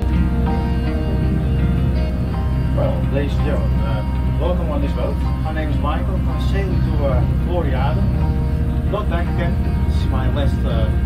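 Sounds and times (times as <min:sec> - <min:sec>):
background music: 0:00.0 - 0:11.0
boat engine drone: 0:00.0 - 0:11.0.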